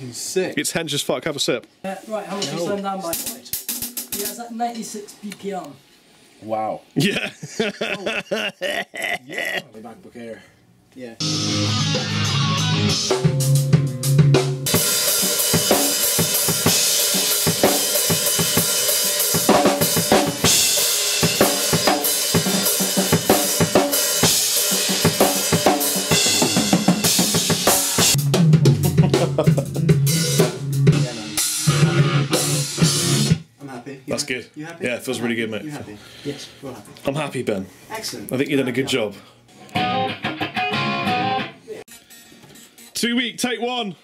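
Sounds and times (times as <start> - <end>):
rock drum kit playing: 3.1 - 4.4, 11.2 - 33.5, 39.8 - 41.6.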